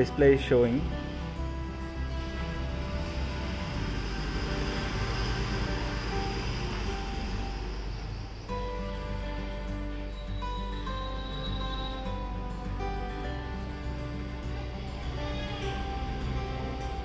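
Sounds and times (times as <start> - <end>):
soft acoustic guitar music: 0.0 - 17.0
steady hiss: 0.0 - 17.0.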